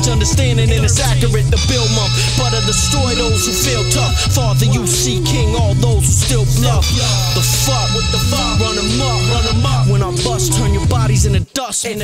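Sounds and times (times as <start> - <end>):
hip-hop beat with bass line: 0.0 - 12.0
person rapping: 0.0 - 12.0.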